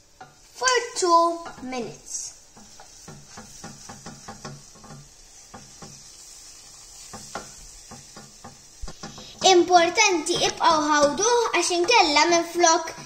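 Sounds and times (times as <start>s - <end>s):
faint sizzle: 0.0s - 13.0s
spoon knocking pan: 0.1s - 13.0s
wooden spoon scraping pan: 1.4s - 12.1s.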